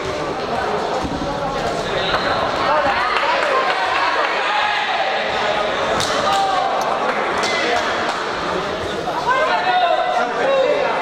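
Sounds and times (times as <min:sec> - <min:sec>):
voices and shouts: 0:02.5 - 0:08.0, 0:09.0 - 0:11.0.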